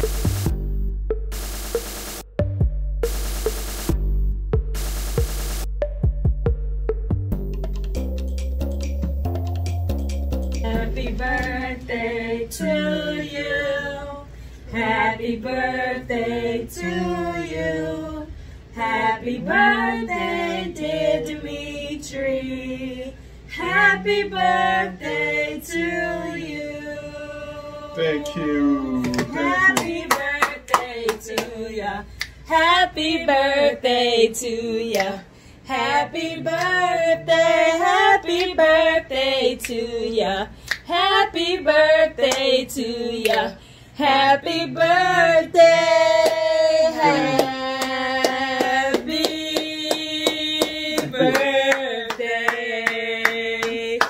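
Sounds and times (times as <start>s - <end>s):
group singing together: 10.6s - 54.0s
hand clapping: 29.0s - 31.6s, 34.9s - 35.2s, 43.2s - 43.5s, 47.0s - 53.8s.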